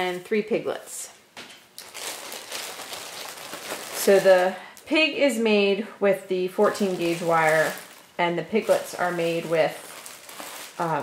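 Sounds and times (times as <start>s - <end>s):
plastic bag crinkling: 1.8s - 4.9s, 6.6s - 11.0s.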